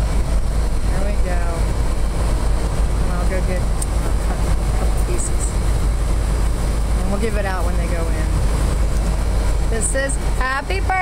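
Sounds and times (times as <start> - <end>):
loud low rumble and hum: 0.0 - 11.0
woman speaking: 0.9 - 1.7, 3.0 - 3.7, 5.0 - 5.6, 7.0 - 8.4, 9.7 - 11.0.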